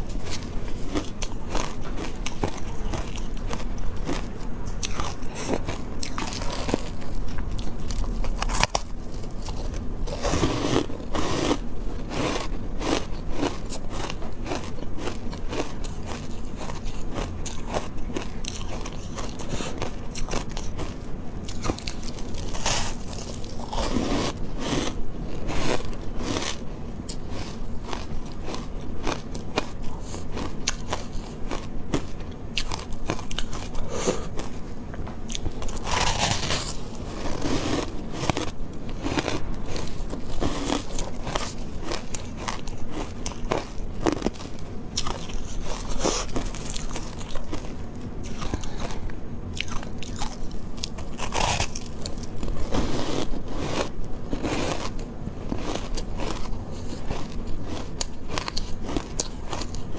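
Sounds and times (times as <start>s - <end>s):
ice being chewed: 0.0s - 59.9s.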